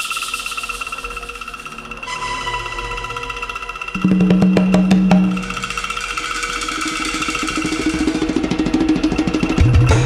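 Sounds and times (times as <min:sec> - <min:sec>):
held tones: 0:04.0 - 0:06.1
low note: 0:04.0 - 0:06.1
ticking percussion pattern: 0:04.0 - 0:06.2.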